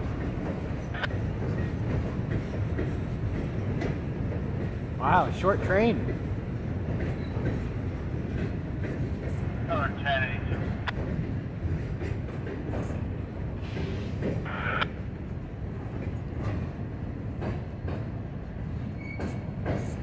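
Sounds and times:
train rumbling over bridge: 0.0s - 20.0s
train wheels clicking: 0.0s - 20.0s.

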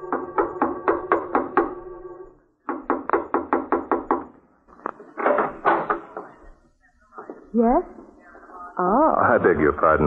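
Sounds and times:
knocking on a door: 0.1s - 1.8s, 2.6s - 4.4s.

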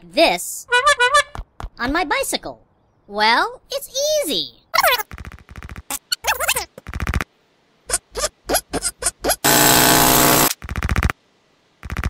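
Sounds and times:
loud harsh noise: 9.4s - 10.5s
short rattling bursts: 9.4s - 11.2s.

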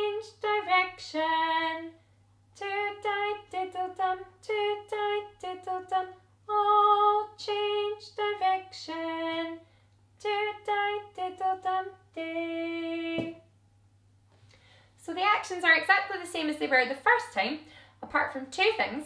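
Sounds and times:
woman singing unaccompanied: 0.0s - 13.5s, 15.0s - 19.0s.

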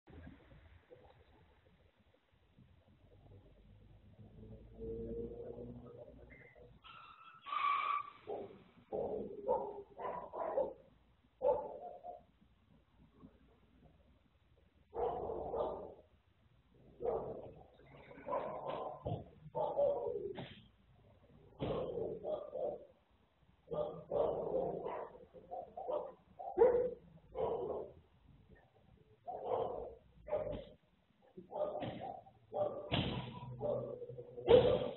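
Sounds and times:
dog barking: 8.1s - 12.3s, 14.9s - 16.1s, 17.0s - 20.4s, 21.6s - 23.0s, 23.6s - 28.0s, 29.2s - 34.9s.

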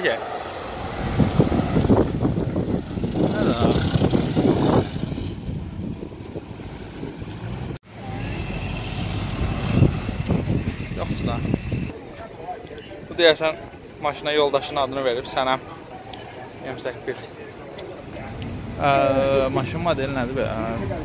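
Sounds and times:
cars driving slowly past: 0.0s - 12.7s
voices: 3.1s - 4.9s, 7.9s - 21.0s.

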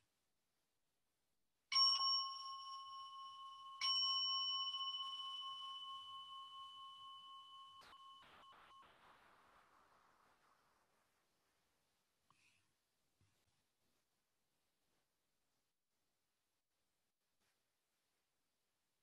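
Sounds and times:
meditation bell ringing: 1.7s - 8.9s.

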